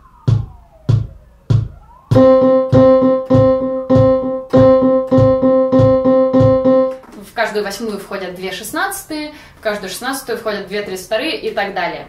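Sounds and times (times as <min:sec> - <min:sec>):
drum machine beat: 0:00.0 - 0:07.0.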